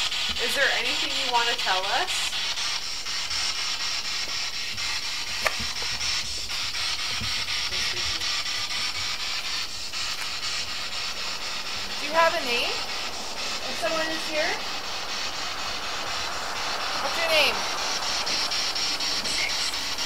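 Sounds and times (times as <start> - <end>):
steady high-pitched hiss: 0.0 - 20.0.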